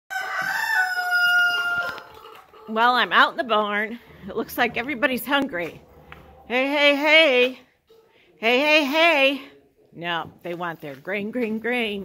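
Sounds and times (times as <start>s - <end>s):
rooster crowing: 0.1s - 2.1s.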